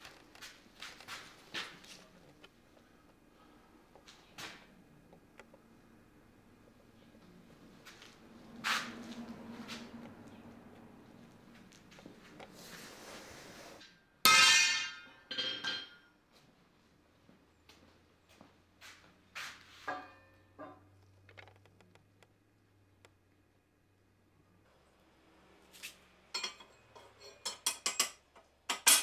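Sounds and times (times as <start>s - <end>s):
ringing metal clang: 14.3s - 16.0s, 19.9s - 20.9s.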